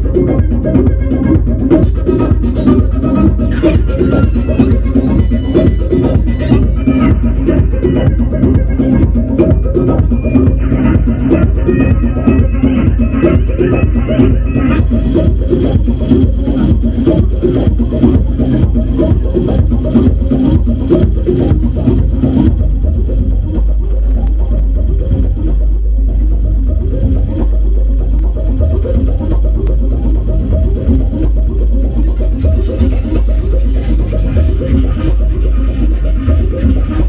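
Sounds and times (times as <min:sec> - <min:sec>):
deep sustained synth bass: 0:00.0 - 0:37.0
fast rhythmic synth pattern: 0:00.0 - 0:37.0.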